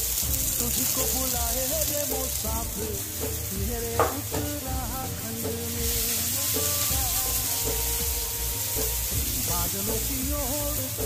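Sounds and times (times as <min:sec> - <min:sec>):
batter sizzling on hot iron: 0:00.0 - 0:11.0
song with gliding notes: 0:00.0 - 0:11.0.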